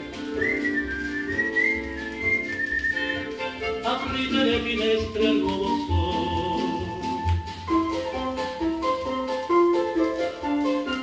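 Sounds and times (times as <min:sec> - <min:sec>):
whistled melody: 0:00.1 - 0:11.0.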